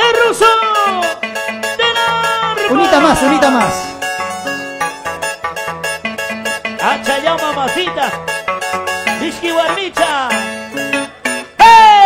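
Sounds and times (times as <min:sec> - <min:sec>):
harp playing fast dance tune: 0:00.2 - 0:11.9
person shouting: 0:01.8 - 0:04.0, 0:11.6 - 0:12.0.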